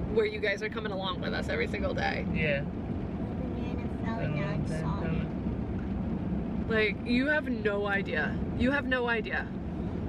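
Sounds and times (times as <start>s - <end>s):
vehicle idling rumble: 0.0s - 10.0s.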